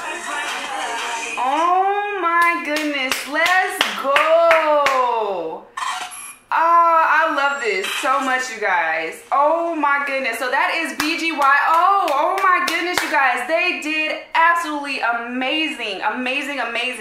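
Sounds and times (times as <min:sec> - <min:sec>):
pop song music: 0:00.0 - 0:01.9
hand claps: 0:02.4 - 0:05.0, 0:11.0 - 0:13.1.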